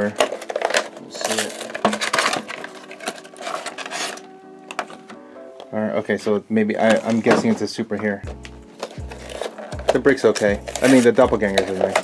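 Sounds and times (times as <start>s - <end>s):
plastic pieces clicking together: 0.0s - 5.0s, 8.3s - 12.0s
packaging crinkling and tearing: 0.0s - 5.2s, 8.3s - 12.0s.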